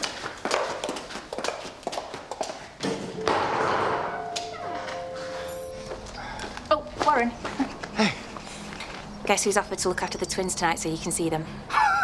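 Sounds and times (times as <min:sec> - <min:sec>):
footsteps on hard floor: 0:04.3 - 0:07.9.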